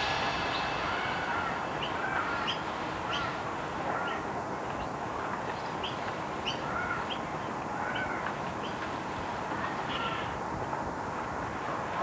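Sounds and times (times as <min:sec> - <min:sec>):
birds calling: 0:00.0 - 0:08.8
background noise: 0:00.0 - 0:12.0.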